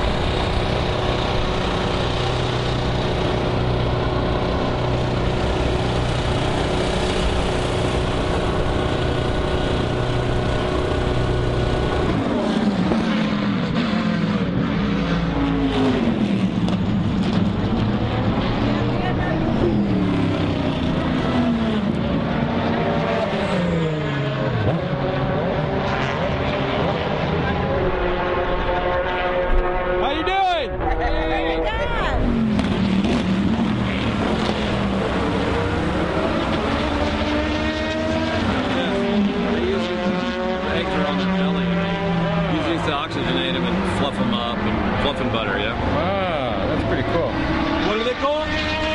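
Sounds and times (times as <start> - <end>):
race car engines passing: 0.0 - 48.9.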